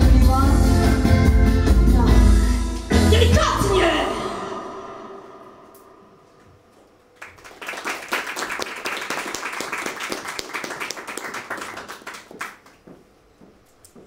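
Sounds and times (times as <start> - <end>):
song ending: 0.0 - 6.1
audience applause: 7.2 - 12.8.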